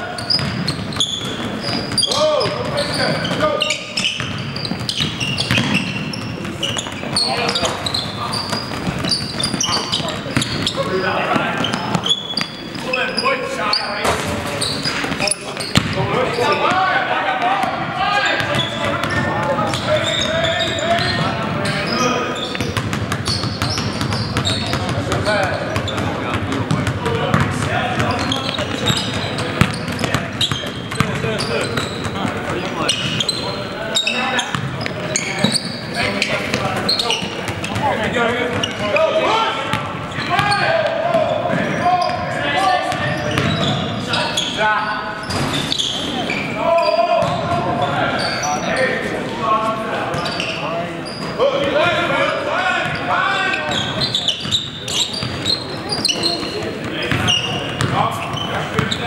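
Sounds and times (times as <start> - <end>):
basketball bouncing on hardwood: 4.2 - 6.8, 25.8 - 28.3, 47.2 - 47.6, 57.8 - 58.0
players shouting: 35.1 - 44.9.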